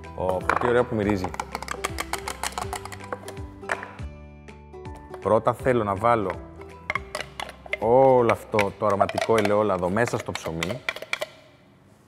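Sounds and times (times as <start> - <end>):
background music sustained notes: 0.0 - 11.5
utensil clicking against glass jar: 0.4 - 3.8, 6.2 - 11.6.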